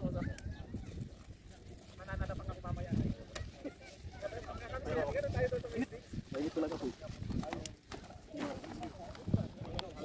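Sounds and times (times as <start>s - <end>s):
indistinct group talking: 0.0s - 10.0s.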